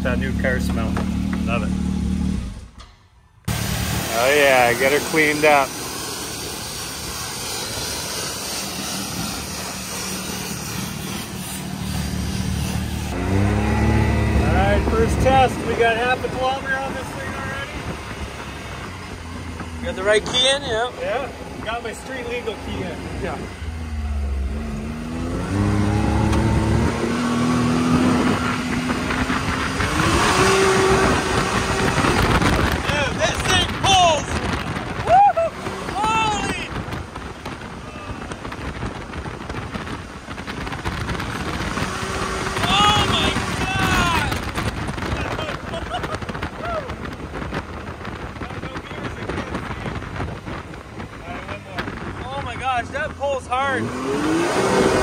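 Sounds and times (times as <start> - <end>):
turbocharged engine accelerating: 0.0 - 55.0.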